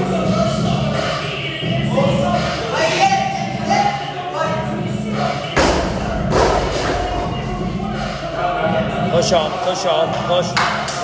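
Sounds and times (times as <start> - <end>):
background music: 0.0 - 11.0
weight thudding on gym floor: 5.6 - 7.4.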